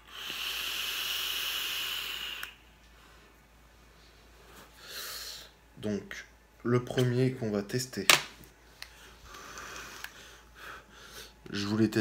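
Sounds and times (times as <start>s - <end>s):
e-cigarette draw hiss: 0.0s - 2.6s.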